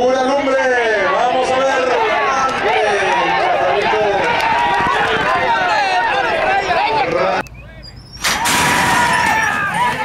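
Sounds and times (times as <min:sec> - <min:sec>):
spectators shouting: 0:00.0 - 0:07.4, 0:08.2 - 0:10.0
burst of noise: 0:08.2 - 0:09.7.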